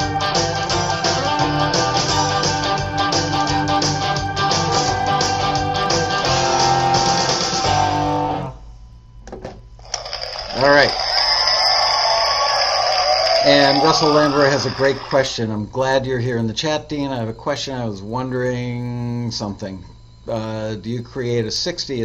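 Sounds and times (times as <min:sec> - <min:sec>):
southern rock band playing: 0:00.0 - 0:08.5.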